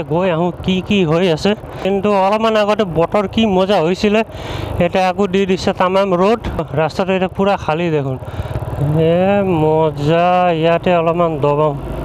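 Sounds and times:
person talking: 0.0 - 8.2, 8.8 - 11.8
wind and motorcycle road noise: 0.0 - 12.0.

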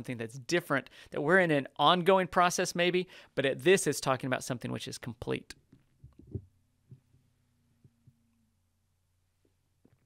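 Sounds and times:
faint room hum: 3.0 - 10.0.

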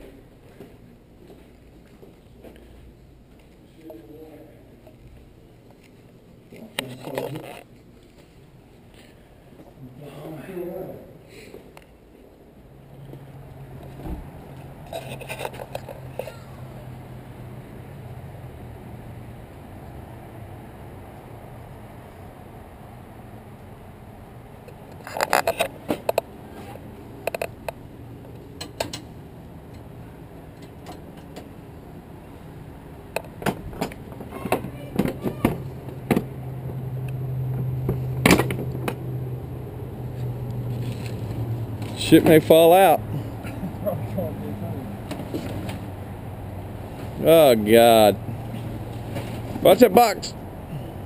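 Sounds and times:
low engine hum: 12.6 - 51.0.

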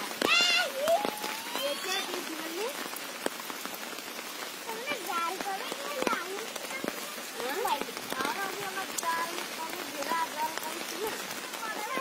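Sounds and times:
rain falling on water: 0.0 - 12.0.

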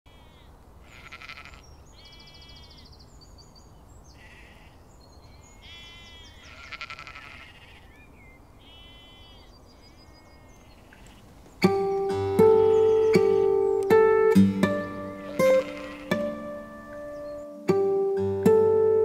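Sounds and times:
sheep bleating: 0.1 - 2.6, 4.2 - 4.8, 5.6 - 8.0, 8.7 - 9.3, 15.0 - 16.9
short high bird chirps: 8.0 - 14.0.

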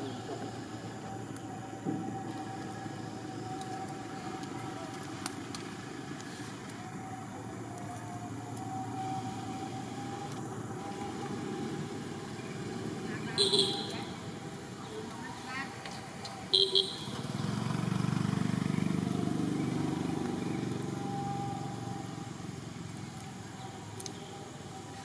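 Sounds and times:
outdoor background rumble: 0.0 - 25.0.

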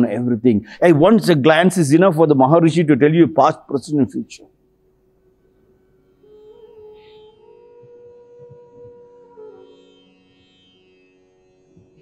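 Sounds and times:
quiet instrumental music over a drone: 5.1 - 12.0.

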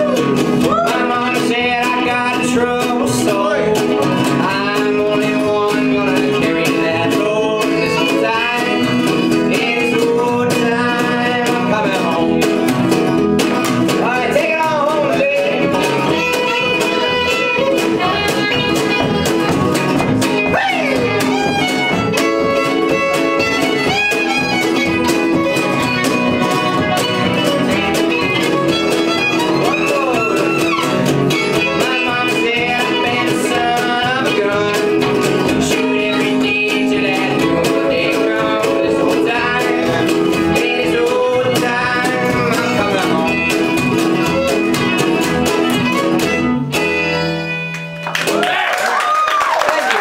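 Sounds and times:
fiddle melody: 0.0 - 48.0
plucked upright bass: 0.0 - 48.5
strummed acoustic guitar: 0.0 - 48.6.

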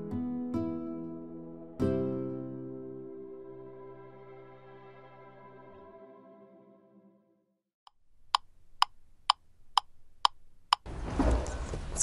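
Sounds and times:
clock-like ticking: 7.9 - 10.9.

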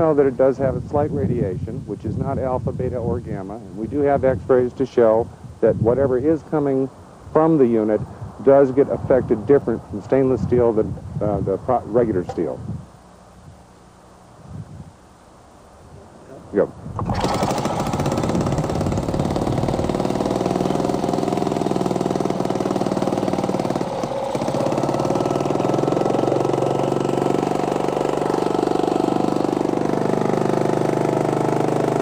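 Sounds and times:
small engine starting and running: 17.0 - 32.0.

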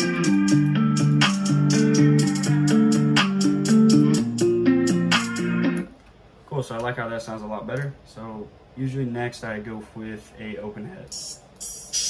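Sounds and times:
hi-hat ticking: 0.0 - 5.8, 11.0 - 12.0
guitar picking chords: 0.0 - 5.9.

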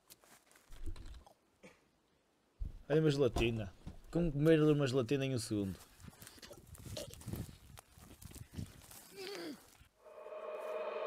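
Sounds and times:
soft thuds and knocks: 2.6 - 4.0.

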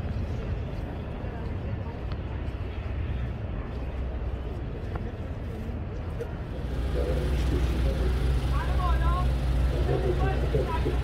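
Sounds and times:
vehicle engine idling: 6.4 - 11.0.

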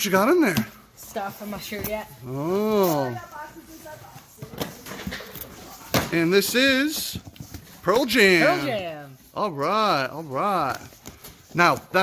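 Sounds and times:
hands rubbing on cardboard: 5.5 - 12.0.

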